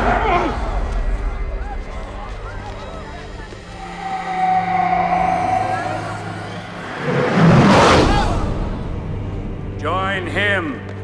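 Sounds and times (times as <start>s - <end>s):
low droning bed: 2.6s - 7.7s
rushing whoosh: 3.6s - 8.7s
long held tone: 3.7s - 7.2s.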